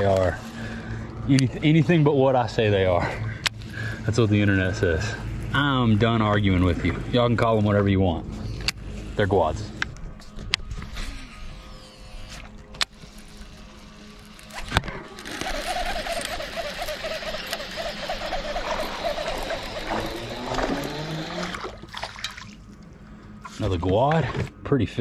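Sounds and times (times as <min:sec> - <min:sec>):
fishing reel being cranked: 0:00.0 - 0:02.0, 0:08.3 - 0:21.8.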